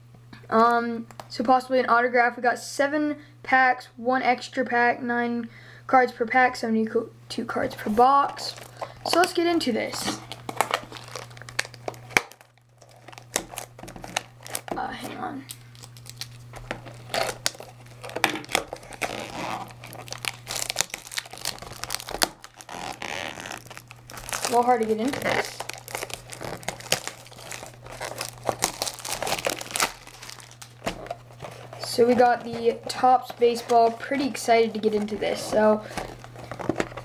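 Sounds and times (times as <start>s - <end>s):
plastic wrap crinkling: 7.7s - 37.0s.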